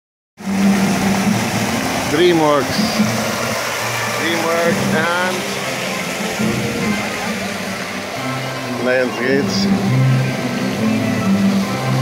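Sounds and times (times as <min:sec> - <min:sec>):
fountain water splashing: 0:00.4 - 0:12.0.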